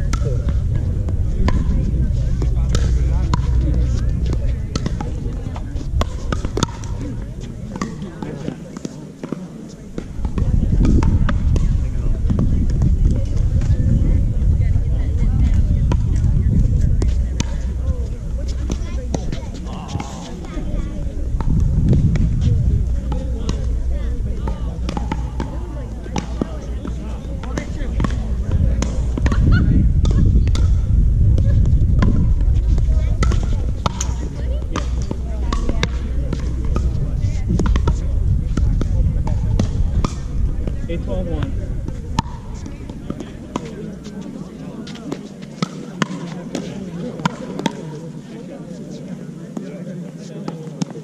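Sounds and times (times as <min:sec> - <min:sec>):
low rumble: 0:00.0 - 0:07.7, 0:10.2 - 0:43.6.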